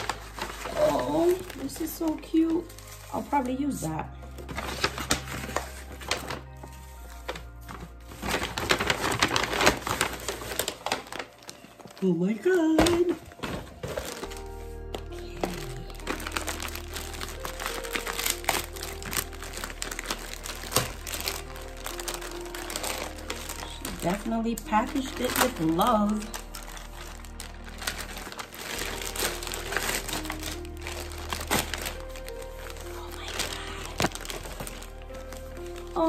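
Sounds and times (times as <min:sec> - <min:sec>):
background music: 0:00.0 - 0:36.0
plastic bag crinkling: 0:00.0 - 0:36.0
shredded paper rustling: 0:00.0 - 0:36.0.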